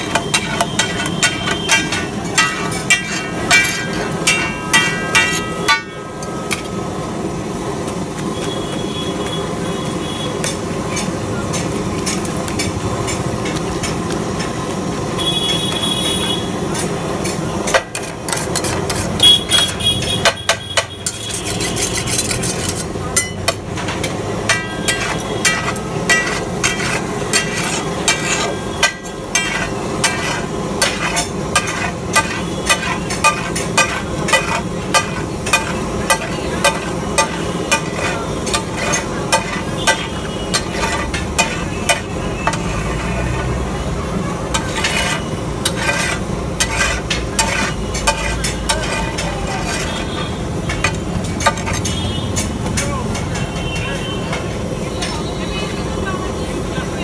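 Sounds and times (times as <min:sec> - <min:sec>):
metal masher clanking on griddle: 0:00.0 - 0:07.3, 0:10.4 - 0:14.8, 0:16.5 - 0:55.4
frying sizzle: 0:00.0 - 0:57.0.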